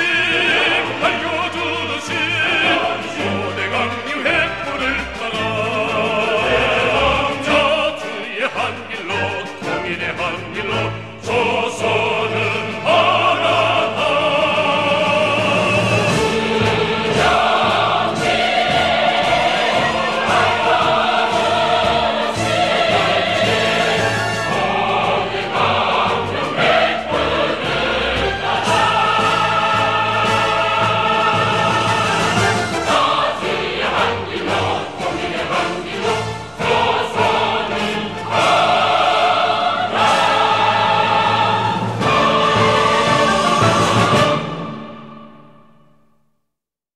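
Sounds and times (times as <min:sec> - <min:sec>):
choir singing with orchestra: 0:00.0 - 0:46.0.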